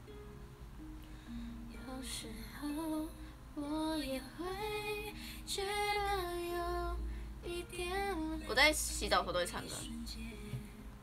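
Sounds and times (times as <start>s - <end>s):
woman singing slow melody: 1.3s - 11.0s.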